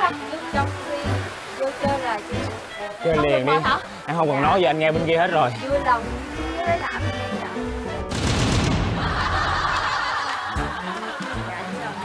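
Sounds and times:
crackling lightning effect: 8.1 - 10.1.

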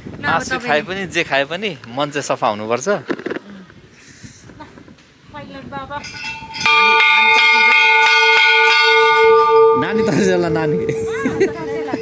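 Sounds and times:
large temple bell ringing: 6.0 - 12.0.

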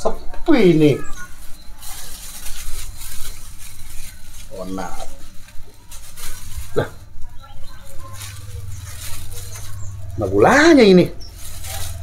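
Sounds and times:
plastic bag crinkling: 1.0 - 12.0
low rumble: 7.7 - 12.0.

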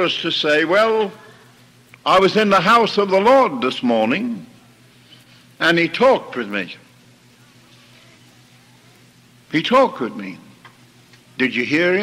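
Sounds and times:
faint electrical hum: 0.0 - 12.0
recording hiss: 0.0 - 12.0.

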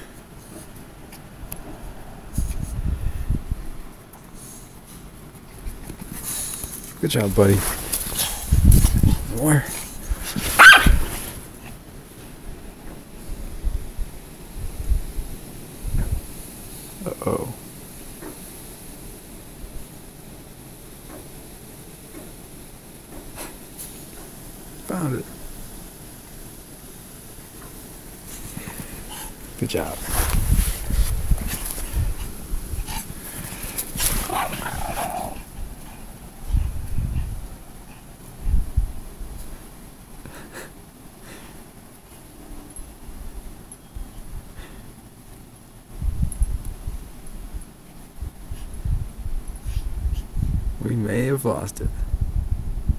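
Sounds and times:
low rumbling microphone noise: 1.4 - 3.9, 5.6 - 17.8, 24.9 - 40.7, 45.9 - 47.6, 48.2 - 51.0, 51.8 - 52.9
small dog barking: 10.5 - 11.1.

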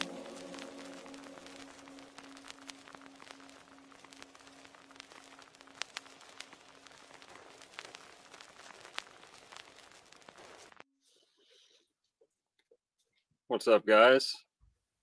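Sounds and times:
low held tone: 0.0 - 7.3
faint hiss: 0.0 - 10.8
sharp clicks and crackles: 0.0 - 10.8.

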